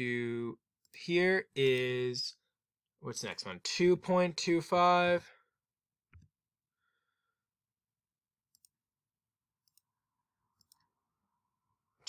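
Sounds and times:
faint computer mouse clicks: 0:10.6 - 0:10.9.

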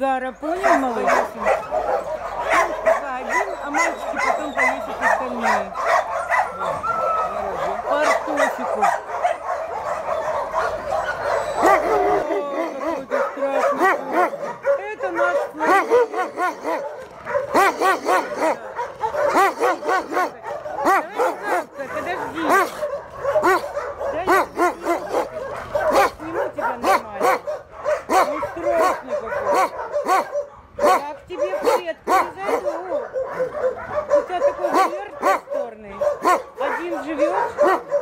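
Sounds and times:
dogs barking and yelping: 0:00.0 - 0:38.0.

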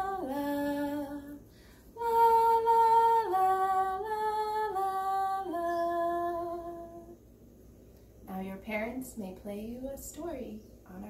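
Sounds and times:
woman singing a long note: 0:00.0 - 0:01.4, 0:02.0 - 0:07.2.

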